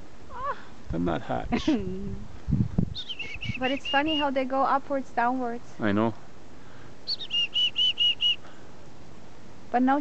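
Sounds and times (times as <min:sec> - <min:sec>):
small bird calling: 0:02.9 - 0:04.5, 0:06.7 - 0:08.7.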